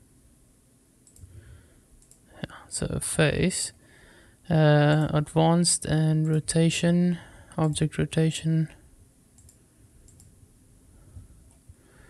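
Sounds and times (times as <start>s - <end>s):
computer mouse clicks: 1.0s - 1.4s, 2.0s - 2.2s, 9.4s - 10.4s.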